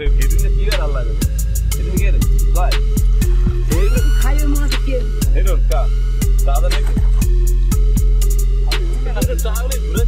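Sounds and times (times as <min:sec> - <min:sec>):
hip-hop music with heavy bass: 0:00.0 - 0:10.0.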